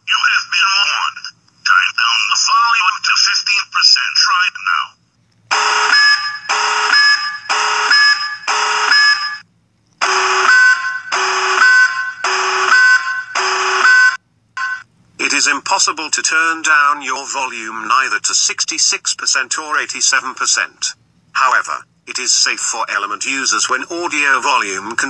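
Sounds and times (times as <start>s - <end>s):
two-tone electronic alarm: 5.5s - 9.4s, 10.0s - 14.8s.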